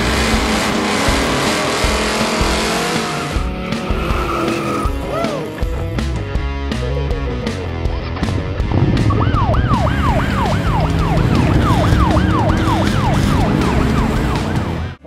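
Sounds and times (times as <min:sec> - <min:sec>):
background music: 0:00.0 - 0:15.0
police siren wailing: 0:08.8 - 0:15.0.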